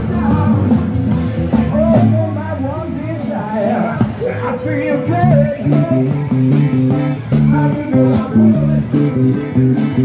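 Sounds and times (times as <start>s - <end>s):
bass guitar line: 0.0s - 10.0s
drum kit with cymbal hits: 0.0s - 10.0s
electric guitar: 0.0s - 10.0s.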